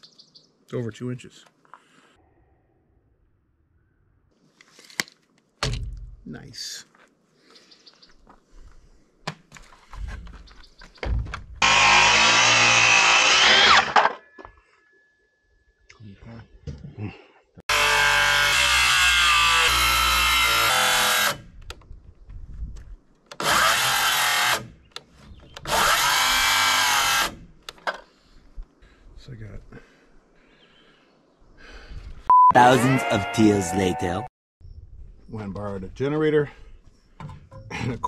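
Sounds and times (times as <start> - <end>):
circular saw cutting wood: 11.6 - 14.1, 17.7 - 21.4, 23.4 - 24.7, 25.7 - 27.4.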